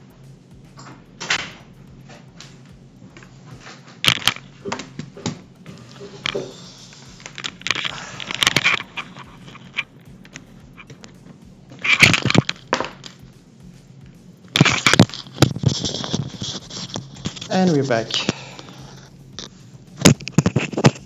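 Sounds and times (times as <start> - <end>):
objects rustling and scraping on desk: 0.8 - 13.3, 14.5 - 21.0.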